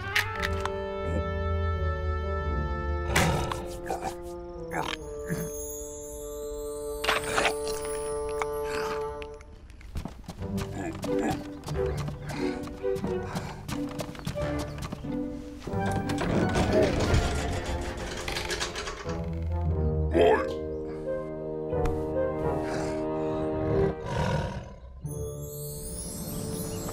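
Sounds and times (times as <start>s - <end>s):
cartoon background music: 0.0s - 9.5s, 10.4s - 24.2s, 24.8s - 26.9s
comic clicks and knocks: 15.8s - 19.7s.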